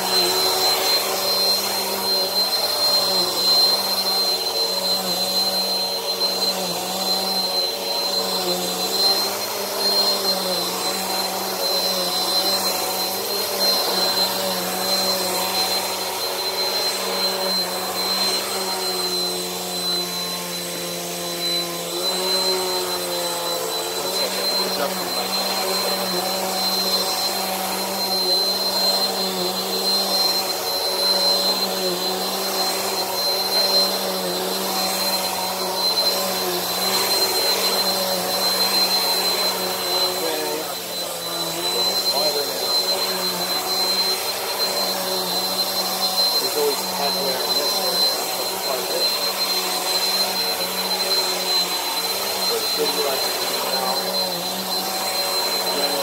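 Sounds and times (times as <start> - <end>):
vacuum cleaner running on carpet: 0.0 - 56.0.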